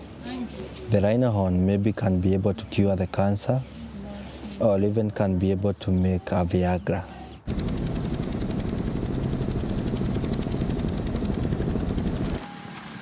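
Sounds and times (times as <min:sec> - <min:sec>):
rapid automatic gunfire: 0:07.5 - 0:12.4.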